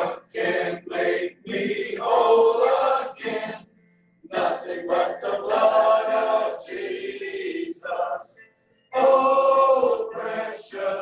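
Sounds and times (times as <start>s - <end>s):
group singing a hymn: 0.0s - 11.0s.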